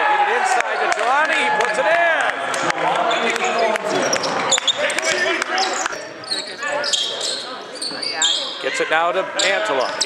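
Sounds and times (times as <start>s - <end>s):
voices echoing in a hall: 0.0s - 10.0s
sneaker squeaks: 3.5s - 10.0s.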